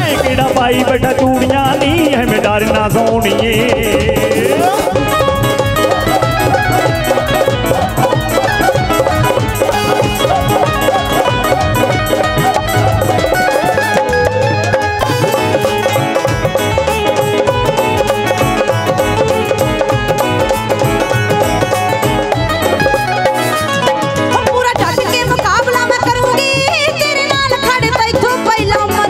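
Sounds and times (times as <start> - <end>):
driving drum beat: 0.0 - 29.0
plucked string melody: 0.0 - 29.0.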